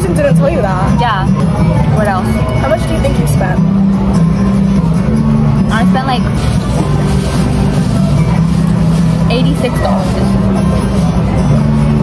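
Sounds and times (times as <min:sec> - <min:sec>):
background music with low bass notes: 0:00.0 - 0:12.0.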